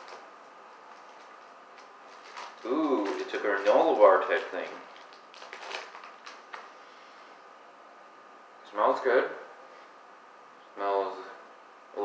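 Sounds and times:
plastic wrapper crinkling: 0:00.8 - 0:06.7.

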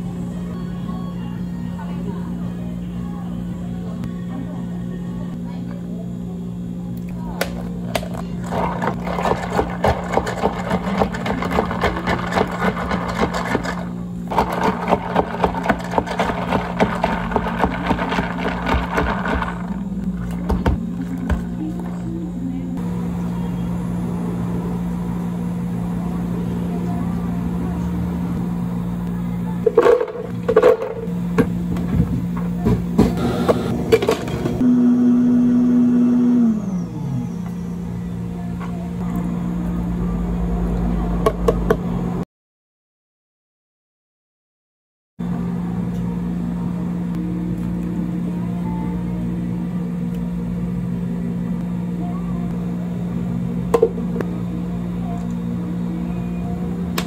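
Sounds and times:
low appliance hum: 0:00.0 - 0:42.2, 0:45.2 - 0:57.0
plastic cups and lids crackling: 0:08.0 - 0:22.1
milk pouring: 0:08.4 - 0:21.4.

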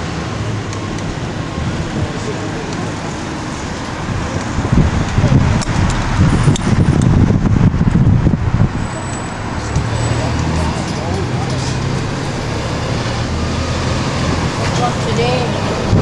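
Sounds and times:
bus engine drone: 0:00.0 - 0:16.0
low wind buffeting: 0:00.0 - 0:16.0
road noise: 0:00.0 - 0:16.0.

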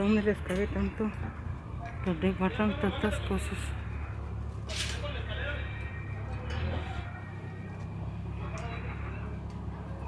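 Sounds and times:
faint voices: 0:00.0 - 0:10.0
low street rumble: 0:00.0 - 0:10.0.

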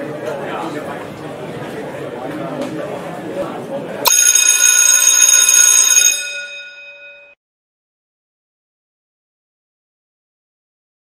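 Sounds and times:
alarm clock bell ringing: 0:04.1 - 0:07.4.

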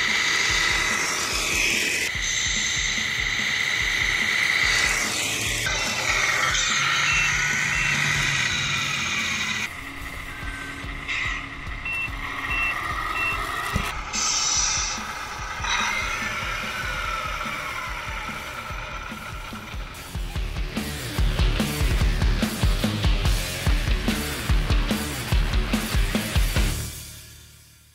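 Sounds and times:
background music: 0:00.0 - 0:27.9
reversing beeper: 0:04.7 - 0:20.2.

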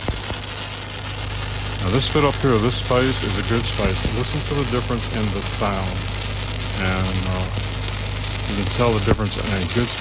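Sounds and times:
sharp welding pops: 0:00.0 - 0:10.0
welding arc crackling hiss: 0:00.0 - 0:10.0.

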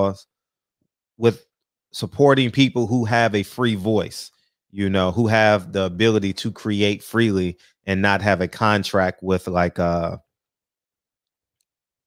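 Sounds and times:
man speaking: 0:00.0 - 0:00.2, 0:01.2 - 0:01.4, 0:02.0 - 0:10.2.

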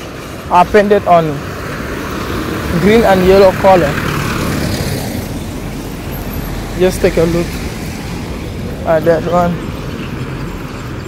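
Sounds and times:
car driving past: 0:01.5 - 0:08.8.

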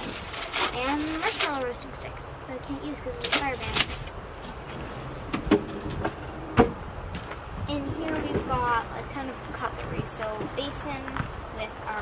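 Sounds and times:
sharp wooden knocks: 0:05.3 - 0:07.4.

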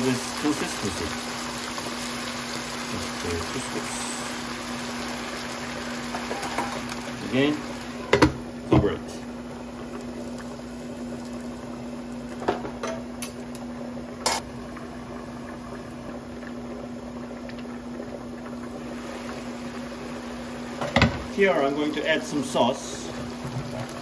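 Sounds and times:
food bubbling in covered wok: 0:01.1 - 0:24.0.

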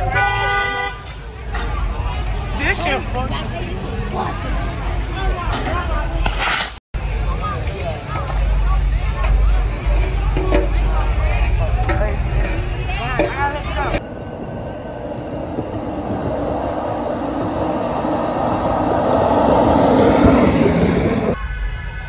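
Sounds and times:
heavy low rumble: 0:07.0 - 0:21.6
car passing close: 0:13.6 - 0:21.4.

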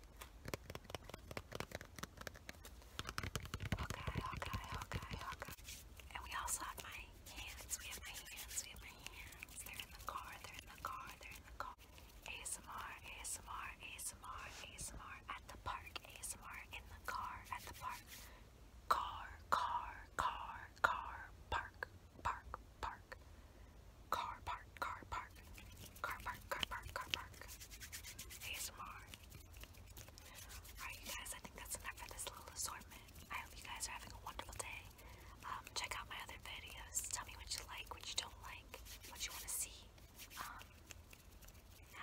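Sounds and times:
woman whispering: 0:03.8 - 0:18.2, 0:18.9 - 0:23.2, 0:24.1 - 0:27.6, 0:28.4 - 0:29.2, 0:30.2 - 0:40.8.

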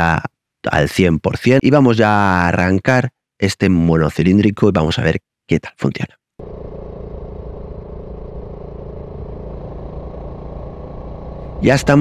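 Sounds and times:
motorcycle engine cruising: 0:06.4 - 0:12.0.

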